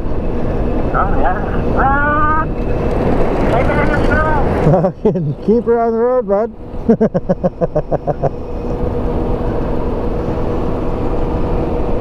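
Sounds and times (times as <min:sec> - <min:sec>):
man talking: 0:03.5 - 0:06.6.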